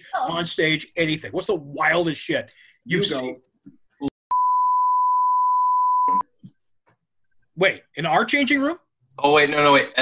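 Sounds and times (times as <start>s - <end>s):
speech: 0.1s - 3.4s, 7.6s - 10.0s
censor beep tone: 4.3s - 6.3s.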